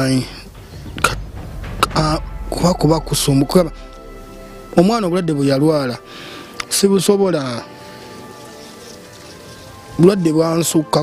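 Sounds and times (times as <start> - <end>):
quiet background music: 0.0 - 11.0
steady hiss: 0.0 - 11.0.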